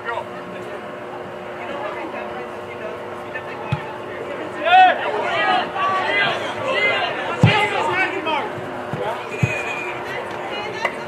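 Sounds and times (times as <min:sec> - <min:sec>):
spectators talking and calling: 0:00.0 - 0:11.0
soccer ball thumps: 0:03.7 - 0:03.9, 0:07.4 - 0:07.9, 0:08.5 - 0:09.7.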